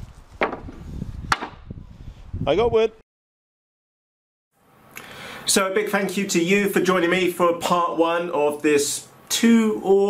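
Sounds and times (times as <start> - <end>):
timber clattering together: 0.4 - 1.6
wooden knocks: 0.4 - 1.6.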